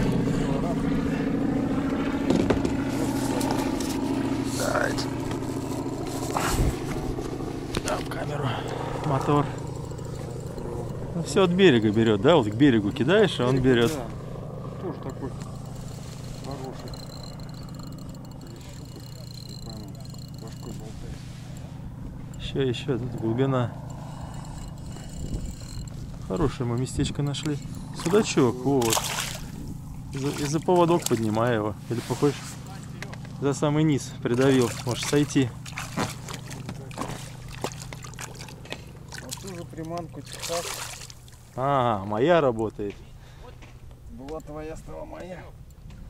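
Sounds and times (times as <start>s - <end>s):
thin high whine: 0.0s - 30.2s
boat motor droning: 0.0s - 46.0s
steady low hum: 0.0s - 46.0s
fish splashing at water surface: 28.0s - 31.4s, 34.4s - 41.6s.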